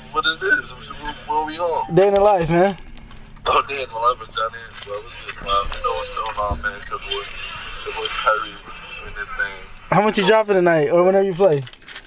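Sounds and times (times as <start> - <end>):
indistinct talk: 3.4 - 11.6
keys jangling: 4.6 - 6.4, 11.5 - 12.0.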